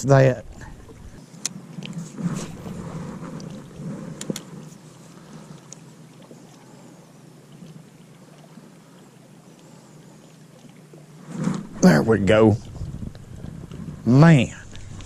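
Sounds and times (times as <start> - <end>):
low steady hum: 0.0 - 15.0.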